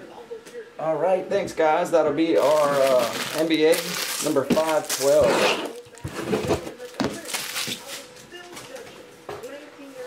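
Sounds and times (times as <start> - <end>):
faint indistinct voices: 4.3 - 10.0.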